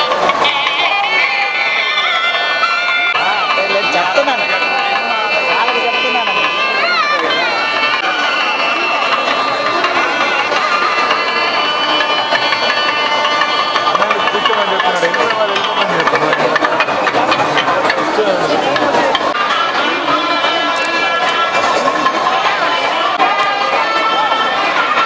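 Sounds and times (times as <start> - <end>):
festival crowd voices: 0.0 - 25.0
long high melodic tone: 0.0 - 25.0.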